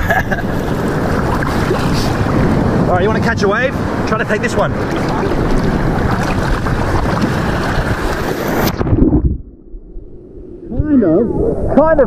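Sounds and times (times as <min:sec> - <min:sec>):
surf rushing and churning: 0:00.0 - 0:12.0.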